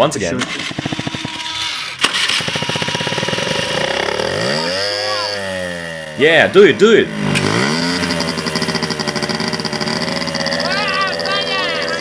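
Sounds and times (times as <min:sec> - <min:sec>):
scooter engine sputtering: 0:00.4 - 0:12.0.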